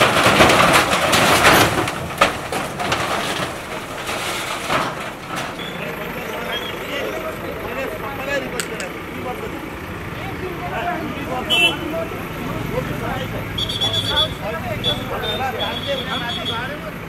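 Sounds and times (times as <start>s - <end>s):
diesel engine running: 0.0s - 17.0s
crowd voices: 4.9s - 17.0s.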